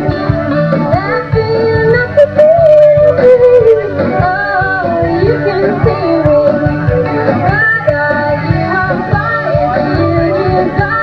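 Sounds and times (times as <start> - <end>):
bass guitar: 0.0 - 11.0
drums: 0.0 - 11.0
electric guitars: 0.0 - 11.0
woman singing: 0.0 - 11.0.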